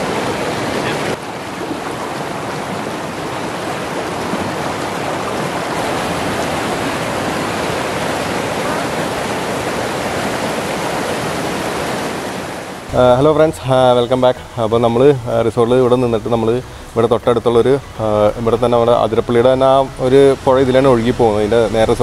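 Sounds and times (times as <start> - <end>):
river rapids roaring over rocks: 0.0 - 22.0.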